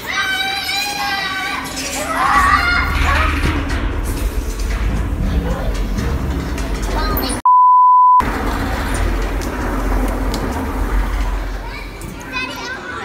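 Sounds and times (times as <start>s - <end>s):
rumble of metal tube slide: 1.4s - 7.4s, 8.2s - 13.0s
electronic beep: 7.4s - 8.2s.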